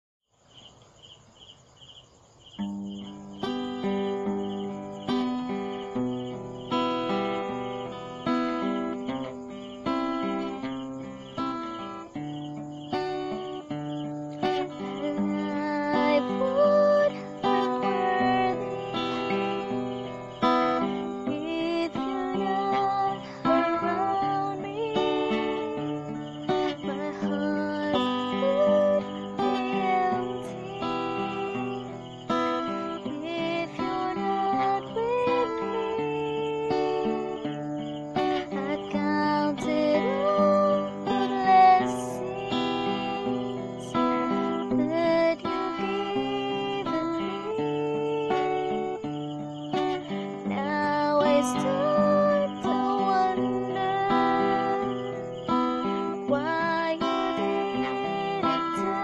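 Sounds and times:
cricket-like chirping: 0.3 - 59.0
strummed acoustic guitar song: 2.6 - 59.0.

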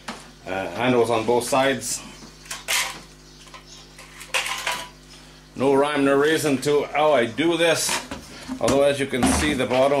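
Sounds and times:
tools clattering on metal workbench: 2.5 - 5.0.

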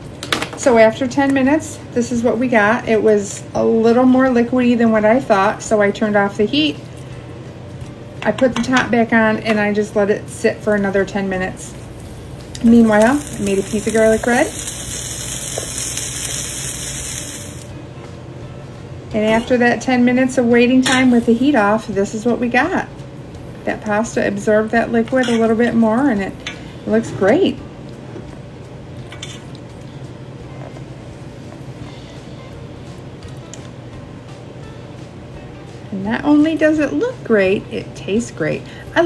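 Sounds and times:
soft background music: 0.0 - 39.0
bread sizzling on griddle: 11.9 - 17.7.

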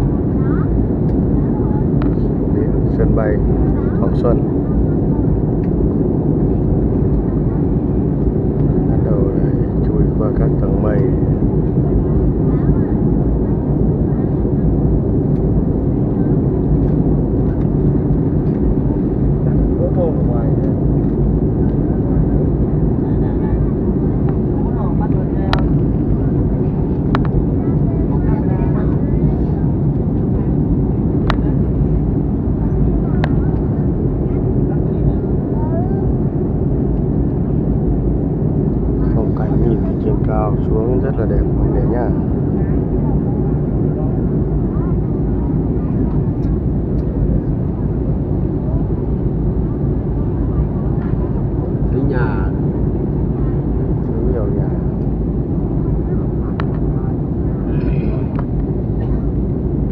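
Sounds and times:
faint voices: 0.0 - 59.9
jet airliner cabin noise: 0.0 - 59.9.

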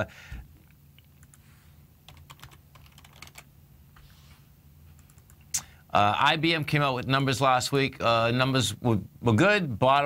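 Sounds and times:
keyboard typing: 2.1 - 3.5, 5.0 - 5.4.

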